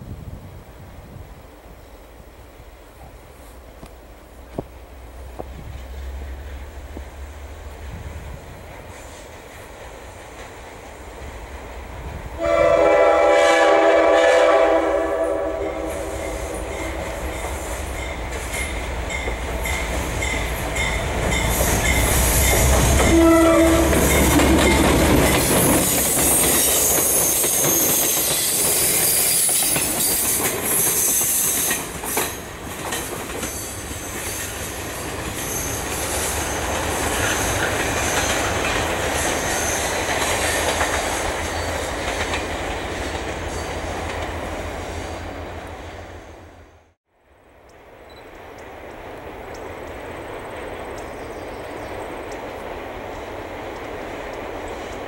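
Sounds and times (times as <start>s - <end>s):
train horn: 12.4s - 17.4s, 22.4s - 24.8s
train wheels clattering on rails: 15.8s - 44.8s.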